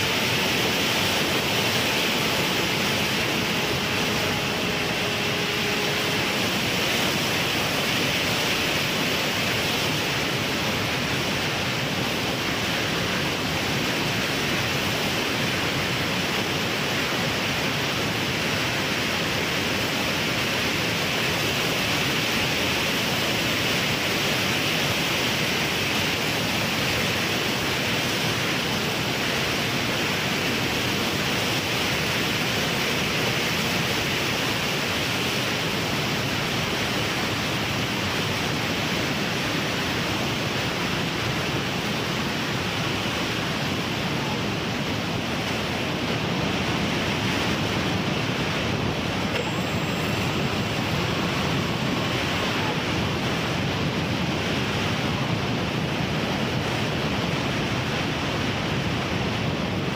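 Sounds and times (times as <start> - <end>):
rushing wind noise: 0.0 - 59.9.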